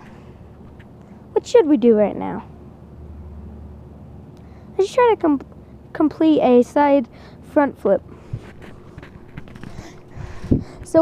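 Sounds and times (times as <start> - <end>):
phone handling rustle: 8.3 - 10.6.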